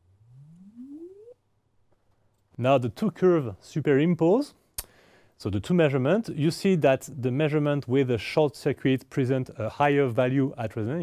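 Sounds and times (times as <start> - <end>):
rising sine tone sweep: 0.0 - 1.4.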